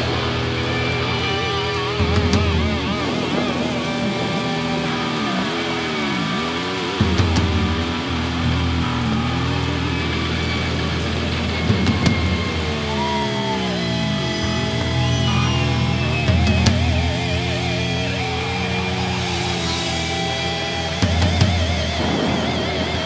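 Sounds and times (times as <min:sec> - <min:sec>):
distorted electric guitar: 0:00.0 - 0:23.0
low droning bass: 0:00.0 - 0:23.0.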